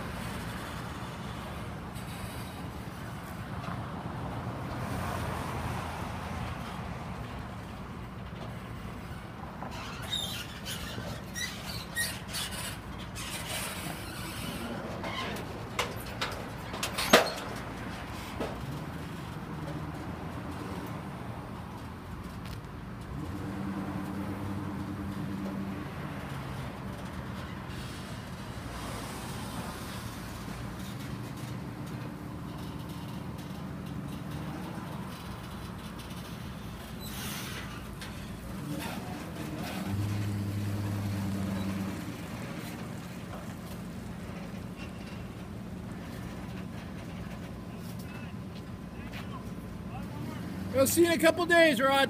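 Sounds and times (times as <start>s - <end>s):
trailer creaking and clicking: 0.0s - 52.0s.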